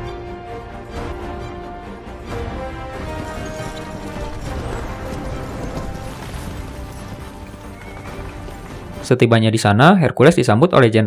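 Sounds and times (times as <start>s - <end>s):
film score music: 0.0s - 11.0s
horse hooves clattering: 2.3s - 9.2s.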